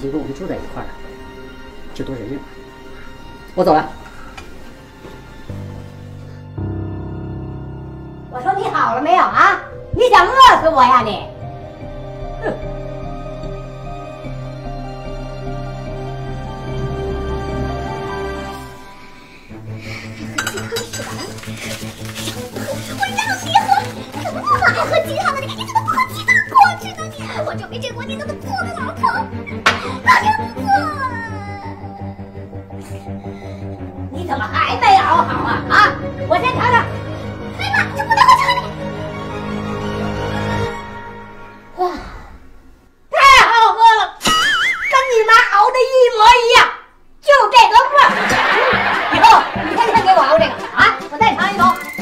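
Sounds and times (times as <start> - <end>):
background music: 0.0 - 52.0
frying pan and utensils clinking: 20.2 - 21.5.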